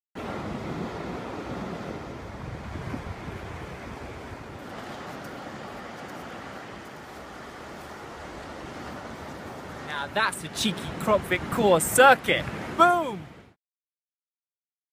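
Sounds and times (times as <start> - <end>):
wind on microphone: 0.2 - 9.9
ocean surf washing onto beach: 0.2 - 13.6.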